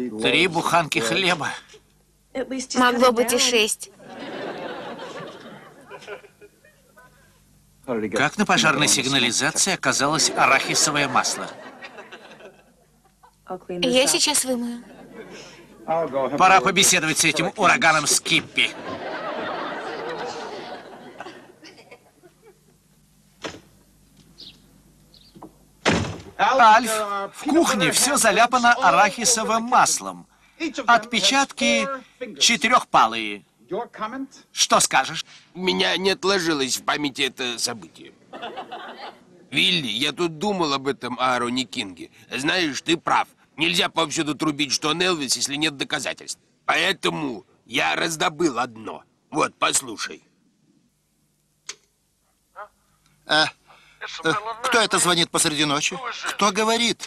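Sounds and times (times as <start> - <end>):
faint tape hum: 0.0 - 57.0.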